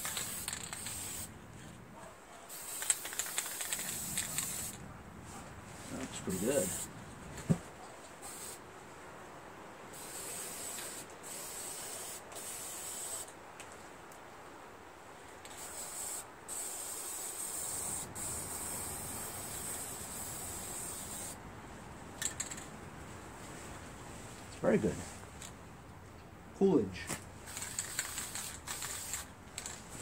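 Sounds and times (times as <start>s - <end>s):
spray paint can hissing: 0.0s - 1.3s, 2.5s - 4.8s, 6.4s - 6.9s, 8.2s - 8.6s, 9.9s - 13.3s, 15.4s - 21.4s, 27.4s - 29.8s.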